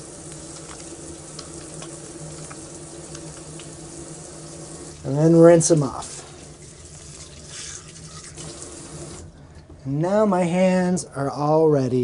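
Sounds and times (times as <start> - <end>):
soapy hands rubbing: 0.0 - 9.3.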